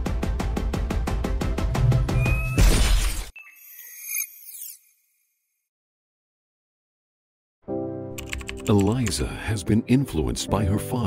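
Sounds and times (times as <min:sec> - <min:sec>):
cinematic music with pulsing beat: 0:00.0 - 0:02.6
crashing glass-shatter hit: 0:02.5 - 0:03.3.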